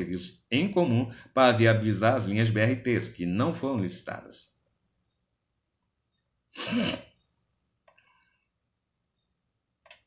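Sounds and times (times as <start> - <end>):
man's explosive burst of breath: 6.6 - 7.1.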